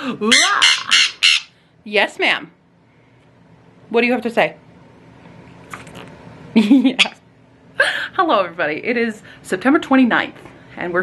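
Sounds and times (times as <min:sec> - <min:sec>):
parrot squawking harshly: 0:00.2 - 0:01.6.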